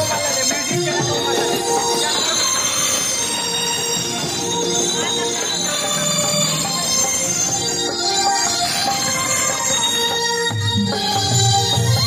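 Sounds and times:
devotional folk music over loudspeakers: 0.0s - 12.0s.

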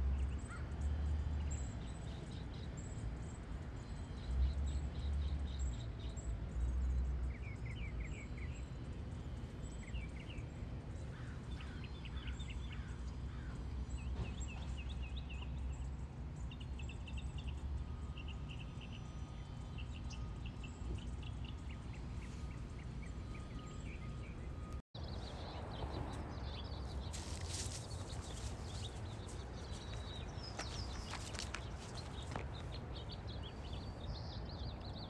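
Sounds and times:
wild birds singing: 0.0s - 35.0s.

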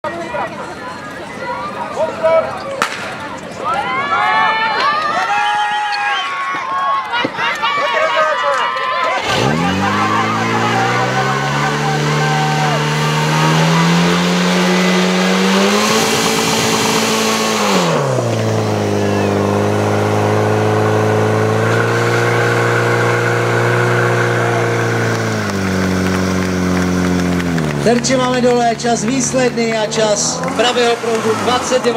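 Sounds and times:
voices: 0.0s - 17.0s, 21.7s - 31.9s
fire pump engine running: 9.1s - 31.9s.

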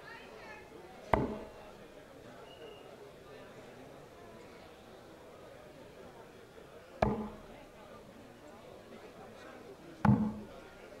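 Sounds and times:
dart thudding into dartboard: 1.1s - 1.6s, 7.0s - 7.5s, 10.0s - 10.5s.

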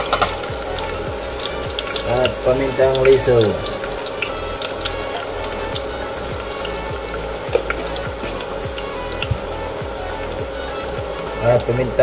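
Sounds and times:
garlic sizzling in hot oil: 0.0s - 12.0s.

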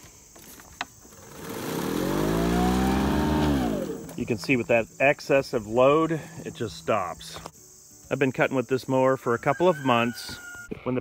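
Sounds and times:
electric mower motor whine: 0.9s - 4.7s.

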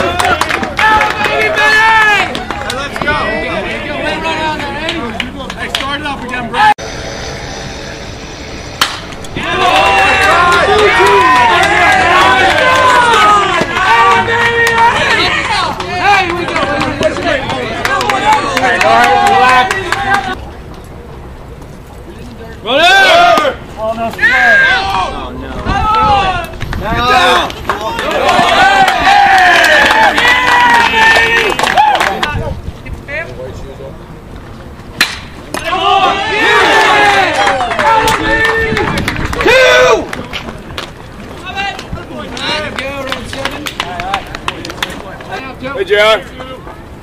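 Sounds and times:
crowd shouting and cheering: 0.0s - 20.4s, 22.7s - 32.4s, 35.5s - 46.8s
bat cracking ball: 8.8s - 9.5s, 35.0s - 35.7s.

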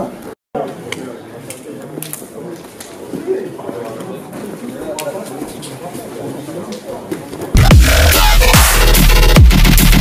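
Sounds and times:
indistinct voices: 7.5s - 9.4s
electronic music with heavy bass: 7.6s - 10.0s.

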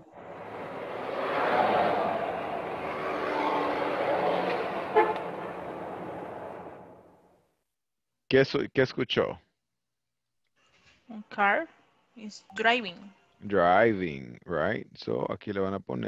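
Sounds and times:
car driving: 0.0s - 7.2s.

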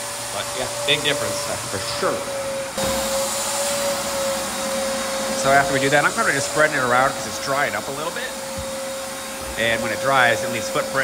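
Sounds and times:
wet vacuum motor whine: 0.0s - 11.0s.

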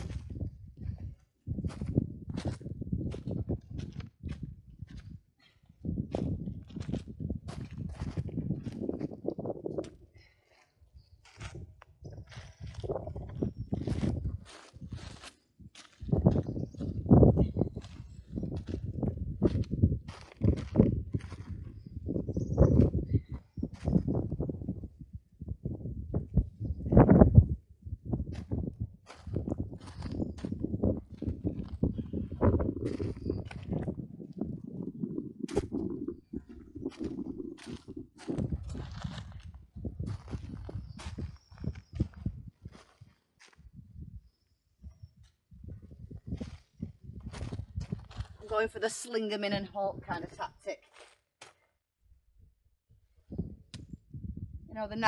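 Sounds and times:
boots crunching on gravel: 35.5s - 39.5s.

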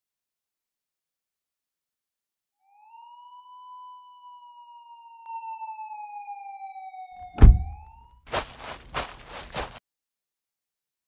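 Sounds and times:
police siren wailing: 2.6s - 8.2s
loud thump: 7.3s - 8.0s.

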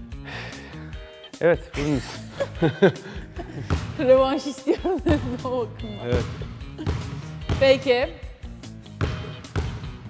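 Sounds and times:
background music: 0.0s - 10.0s
basketball bouncing on wooden floor: 3.7s - 4.3s, 5.0s - 8.2s, 8.9s - 10.0s.

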